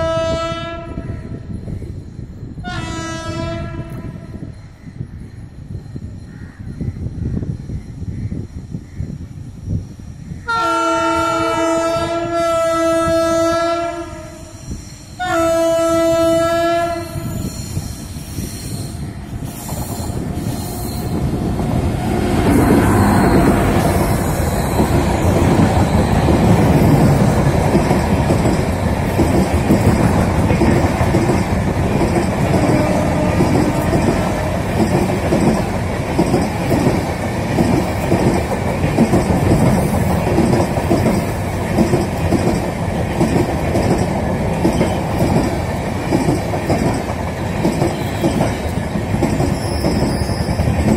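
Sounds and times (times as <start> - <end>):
locomotive horn blasts: 0.0 - 1.0, 2.6 - 4.2, 10.5 - 14.5, 15.2 - 17.3, 32.6 - 33.8
train rumbling on rails: 0.0 - 50.9.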